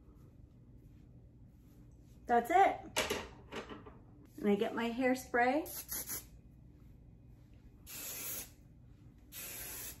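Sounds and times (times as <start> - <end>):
hairspray can spraying: 5.6 - 6.3, 7.8 - 8.6, 9.3 - 10.0.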